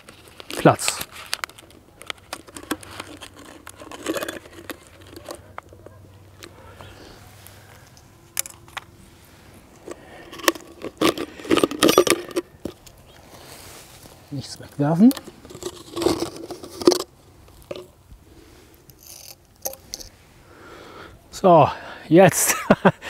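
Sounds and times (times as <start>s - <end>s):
small hard parts clinking: 0.0s - 6.9s, 7.6s - 8.9s, 9.7s - 13.1s, 14.4s - 18.0s, 18.8s - 20.2s.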